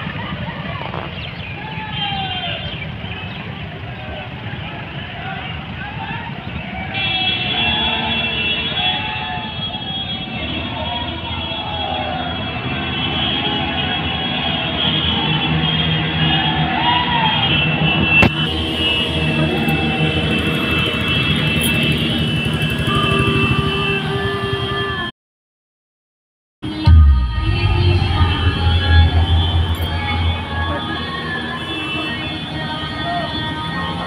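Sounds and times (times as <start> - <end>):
loud music over loudspeakers: 26.6 - 34.0.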